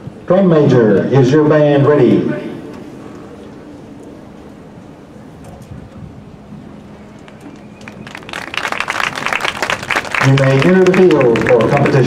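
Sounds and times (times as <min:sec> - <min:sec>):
audience clapping: 0:07.2 - 0:12.0.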